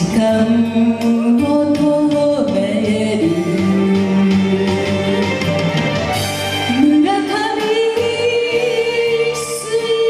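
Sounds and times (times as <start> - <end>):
woman singing: 0.0 - 5.4, 6.6 - 10.0.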